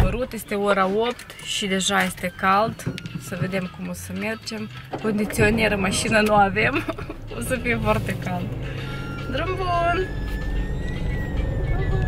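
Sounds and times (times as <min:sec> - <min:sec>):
car engine running: 0:02.6 - 0:12.0.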